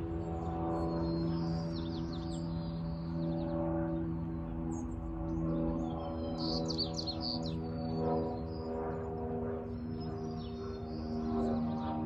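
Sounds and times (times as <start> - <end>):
small birds chirping: 0.0 - 12.0
steady low hum: 0.0 - 12.0.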